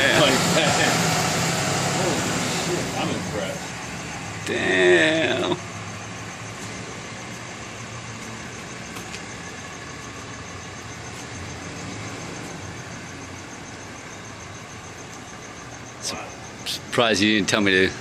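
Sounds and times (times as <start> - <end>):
truck engine running: 0.0 - 18.0.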